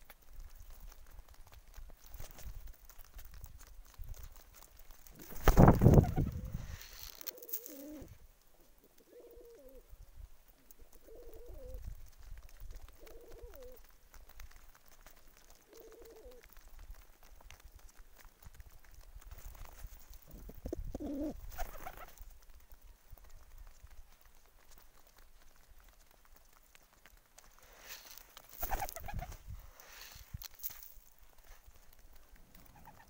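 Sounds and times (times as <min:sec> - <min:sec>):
pigeons cooing: 0:05.2 - 0:09.9, 0:10.8 - 0:12.0, 0:12.8 - 0:13.8, 0:15.6 - 0:16.5, 0:20.3 - 0:22.1, 0:28.6 - 0:29.4, 0:32.5 - 0:33.0.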